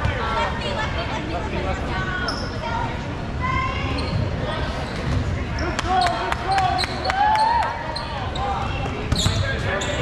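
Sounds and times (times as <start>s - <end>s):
balls bouncing on gym floor: 9.0s - 9.4s.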